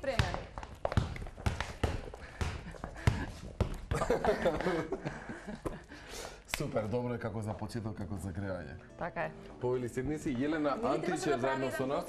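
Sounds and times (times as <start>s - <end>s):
basketball dribbling on hard floor: 0.0s - 4.2s.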